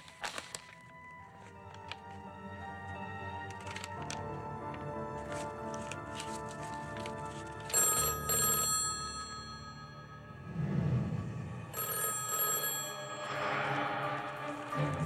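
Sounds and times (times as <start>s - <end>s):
orchestral film music: 0.0s - 7.9s, 13.2s - 15.0s
desk telephone ringing: 1.7s - 10.4s, 11.7s - 14.2s.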